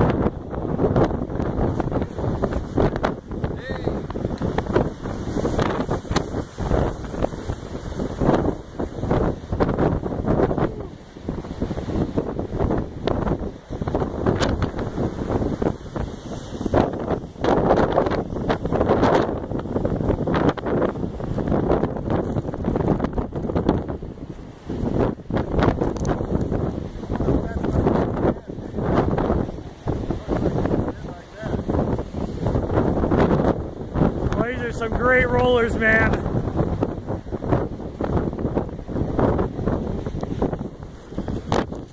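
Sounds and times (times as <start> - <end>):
waves breaking on shore: 0.0 - 41.9
wind buffeting microphone: 0.0 - 41.9.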